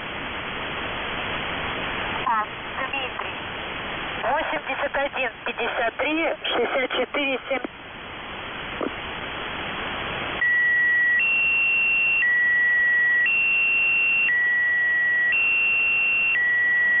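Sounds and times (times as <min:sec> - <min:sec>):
shortwave radio static: 0:02.1 - 0:03.5, 0:04.1 - 0:07.8
alternating two-tone beeps: 0:10.4 - 0:17.0.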